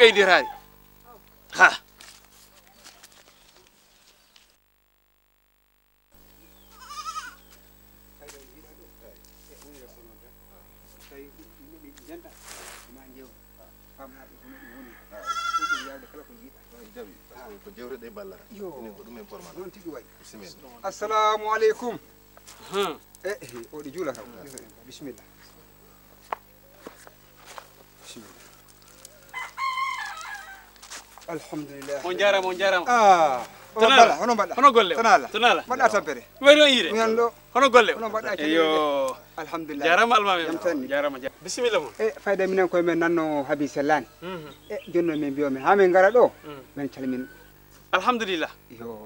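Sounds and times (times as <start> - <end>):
goat bleating: 6.7 - 7.5, 15.0 - 16.2
rooster crowing: 14.2 - 16.3, 28.8 - 31.0, 46.2 - 48.1.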